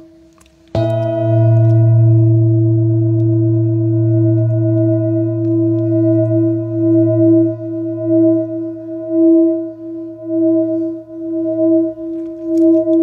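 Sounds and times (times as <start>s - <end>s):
singing bowl ringing: 0.8s - 13.0s.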